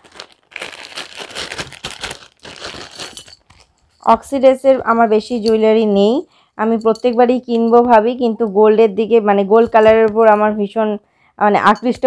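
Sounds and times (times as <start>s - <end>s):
plastic pouch crinkling: 0.0s - 3.8s.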